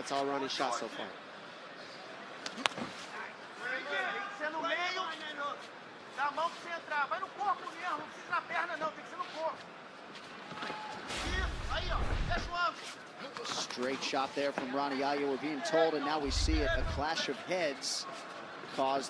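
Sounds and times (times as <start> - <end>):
arena crowd noise: 0.0 - 19.0
short deep rumble: 11.3 - 12.5, 16.3 - 17.0
voices talking: 15.8 - 17.7.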